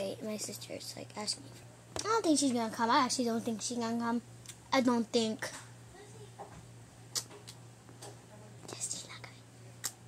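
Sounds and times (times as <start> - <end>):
steady low hum: 0.0 - 10.0
person whispering: 8.6 - 9.5.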